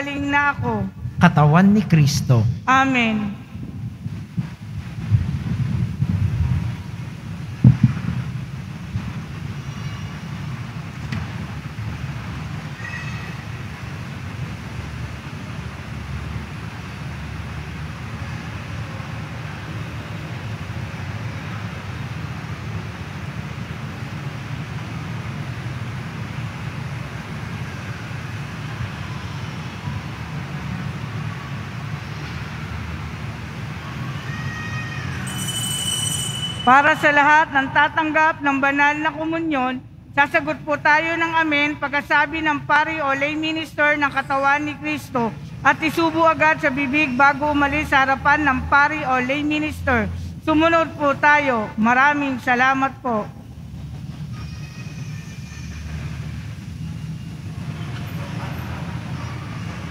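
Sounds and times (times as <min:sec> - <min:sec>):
low rumble of room noise: 0:00.0 - 0:35.0.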